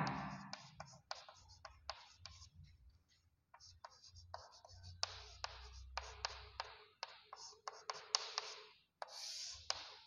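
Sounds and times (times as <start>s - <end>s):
chalk tapping on board: 0.0s - 2.5s, 3.5s - 10.0s
chalk scratching on chalkboard: 0.0s - 10.0s.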